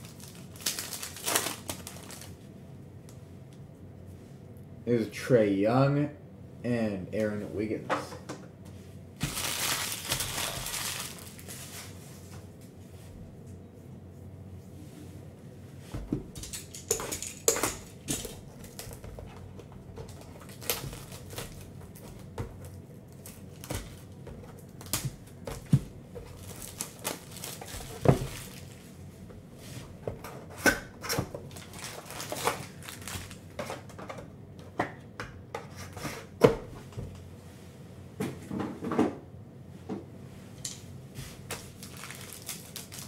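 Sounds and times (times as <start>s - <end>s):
plastic shrink wrap tearing: 0.0s - 2.4s, 9.2s - 11.9s, 20.4s - 21.7s, 26.3s - 28.8s, 31.5s - 33.4s, 41.5s - 43.0s.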